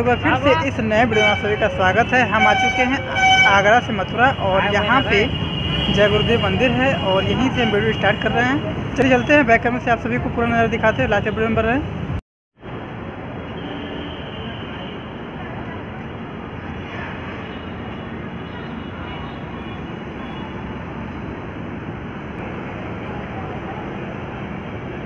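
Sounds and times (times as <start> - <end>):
low traffic rumble: 0.0 - 25.0.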